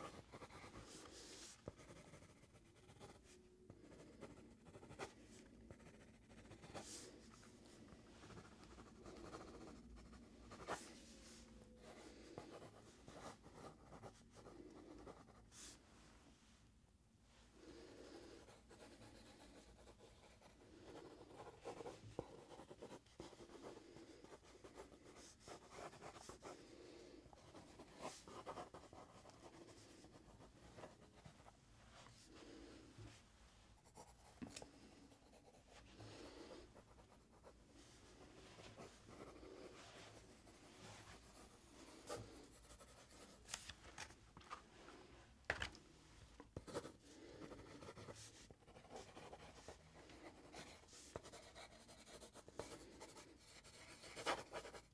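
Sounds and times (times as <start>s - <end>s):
pencil scratching on paper: 0.0s - 15.8s, 18.0s - 32.2s, 33.8s - 43.7s, 46.6s - 54.9s.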